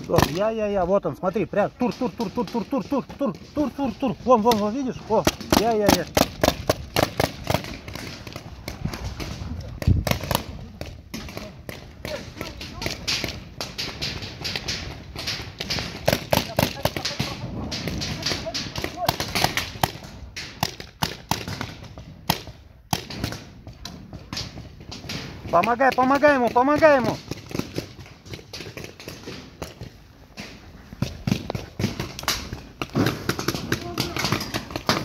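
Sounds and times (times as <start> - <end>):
paintball markers firing: 1.8 - 35.0.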